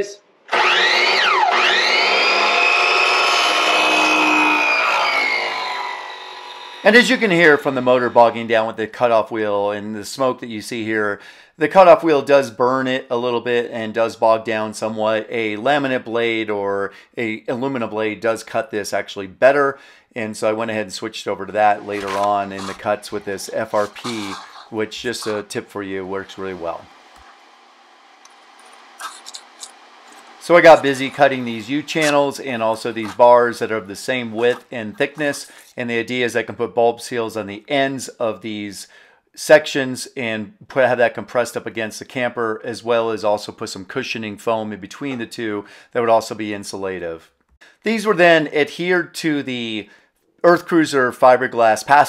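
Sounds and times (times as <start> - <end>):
saw motor whine cutting: 0.5 - 8.7, 21.7 - 35.6.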